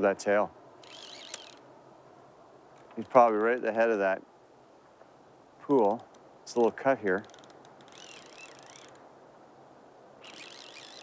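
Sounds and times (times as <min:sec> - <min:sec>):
faint steady hiss: 0:00.0 - 0:11.0
fishing reel drag buzzing: 0:00.8 - 0:01.6, 0:07.2 - 0:09.0, 0:10.2 - 0:11.0.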